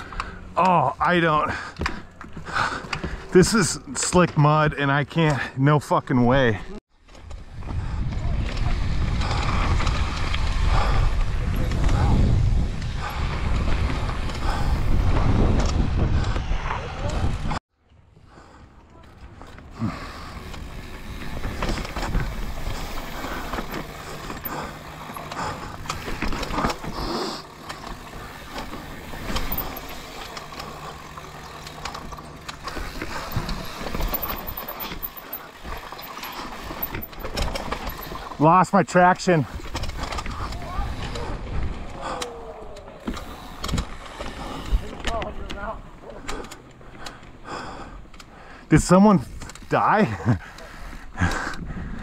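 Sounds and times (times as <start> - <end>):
bike tyres over rocks and roots: 0.0 - 52.0
wind rushing on microphone: 7.3 - 17.6
bike knocking and clattering: 20.4 - 38.4, 39.5 - 47.4.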